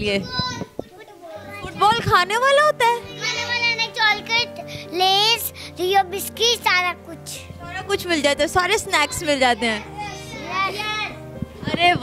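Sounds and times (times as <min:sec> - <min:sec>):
background music: 0:00.0 - 0:12.0
child speaking: 0:00.2 - 0:01.9, 0:03.0 - 0:07.9, 0:08.9 - 0:11.2.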